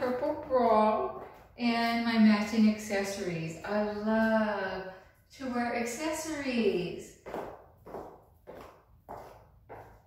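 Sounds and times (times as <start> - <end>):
footsteps on tile floor: 0.0 - 5.1, 6.0 - 10.0.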